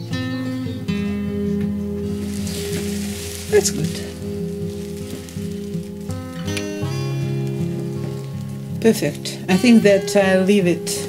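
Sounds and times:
music of sustained chords: 0:00.0 - 0:11.0
faint hiss: 0:02.1 - 0:08.8.

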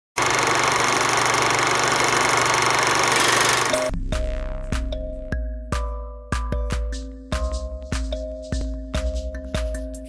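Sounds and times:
loud buzzy noise: 0:00.2 - 0:03.9
music theme: 0:03.6 - 0:10.0.

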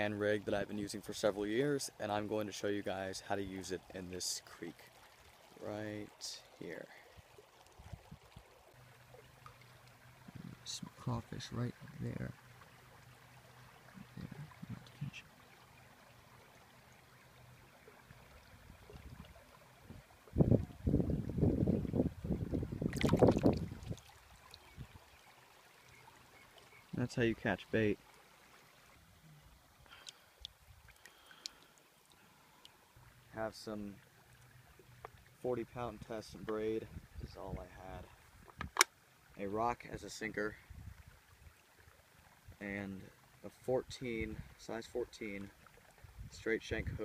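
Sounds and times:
faint flowing creek water: 0:00.0 - 0:47.0.

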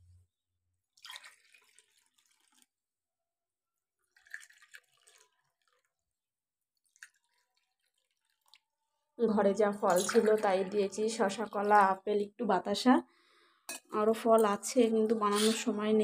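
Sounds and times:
water pouring into steel tumblers: 0:00.9 - 0:02.8, 0:04.0 - 0:06.2, 0:06.8 - 0:08.8, 0:09.8 - 0:12.2.

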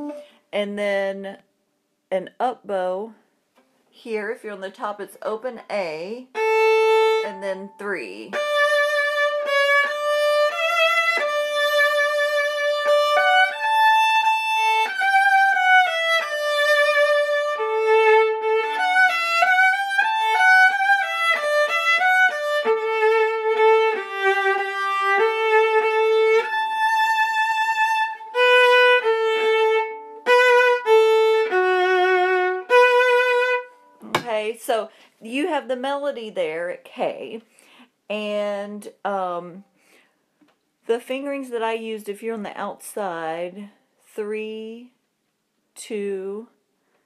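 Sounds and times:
bowed viola: 0:06.3 - 0:34.1.

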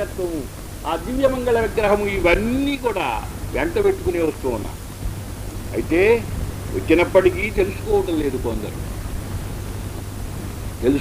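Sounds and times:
man talking: 0:00.0 - 0:04.8, 0:05.6 - 0:08.8
background hiss: 0:00.0 - 0:11.0
low hum: 0:00.0 - 0:11.0.

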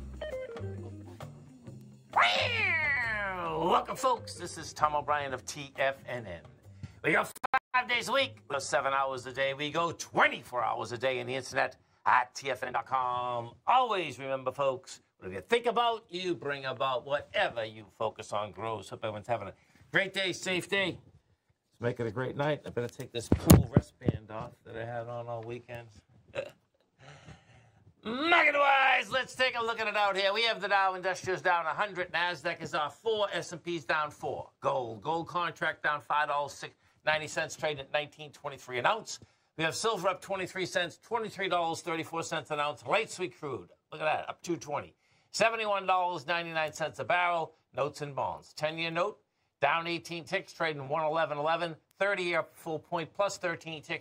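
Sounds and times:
long buzzy meow-like call: 0:02.1 - 0:03.5
person speaking: 0:02.1 - 0:05.0.

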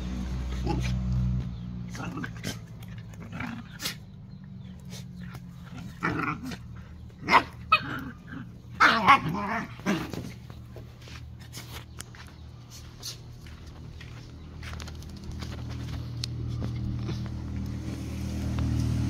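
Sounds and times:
dogs growling and barking: 0:00.0 - 0:10.7.

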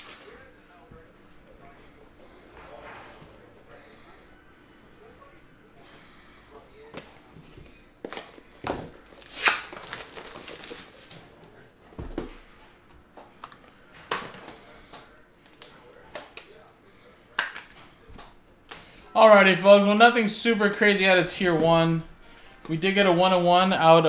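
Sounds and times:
plastic sleeves crinkling: 0:08.1 - 0:11.3.

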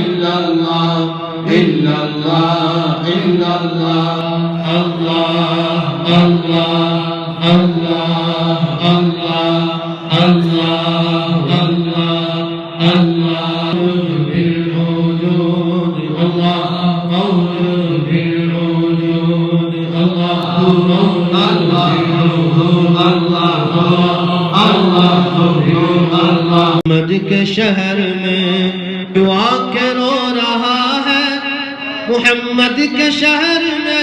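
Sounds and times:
men chanting through microphones: 0:00.0 - 0:34.0.

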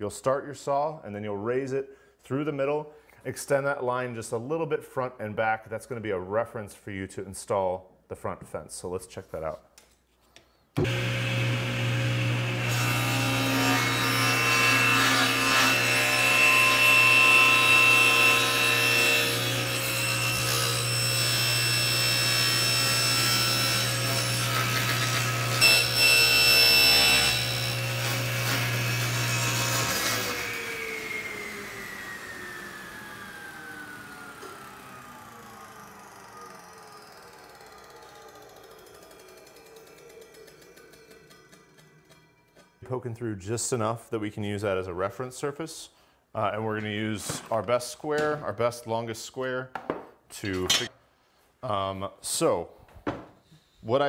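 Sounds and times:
table saw cutting through wood: 0:10.8 - 0:42.7
saw blade winding down whine: 0:10.8 - 0:42.8.

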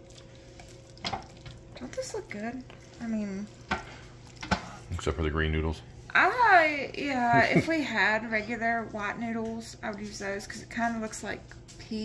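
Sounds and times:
spatula stirring thick food: 0:00.0 - 0:05.2.

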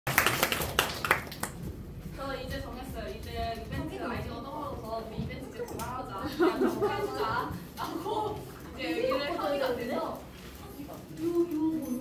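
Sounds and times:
people clapping: 0:00.0 - 0:01.7.

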